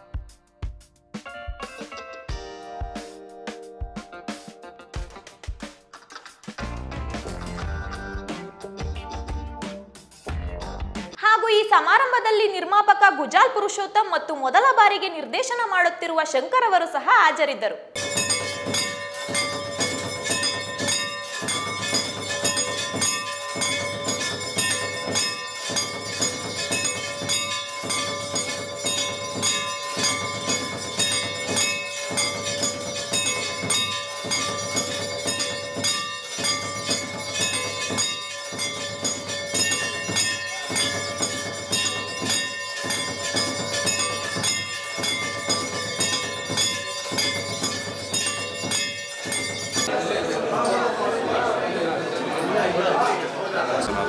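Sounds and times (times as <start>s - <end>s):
temple bells ringing: 18.0s - 54.0s.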